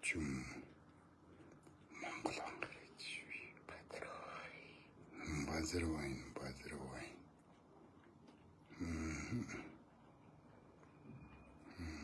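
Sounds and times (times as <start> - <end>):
man whispering: 0.0 - 0.8, 1.9 - 7.3.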